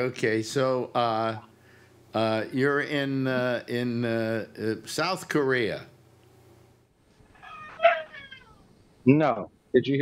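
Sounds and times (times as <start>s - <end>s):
animal cry: 7.2s - 8.8s.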